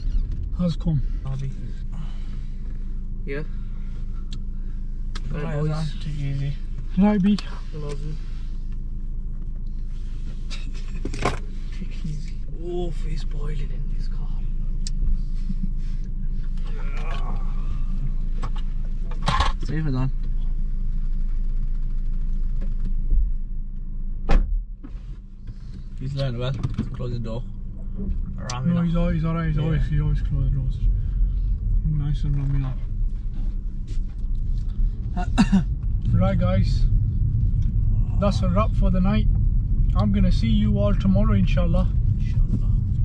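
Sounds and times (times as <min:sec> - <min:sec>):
car engine idling: 0:00.0 - 0:43.0
car door shutting: 0:10.9 - 0:11.6, 0:24.2 - 0:25.9.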